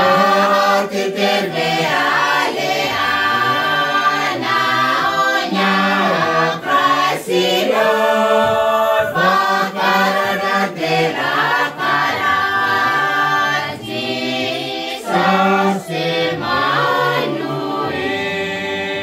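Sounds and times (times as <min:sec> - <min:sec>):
group singing a carol: 0:00.0 - 0:19.0.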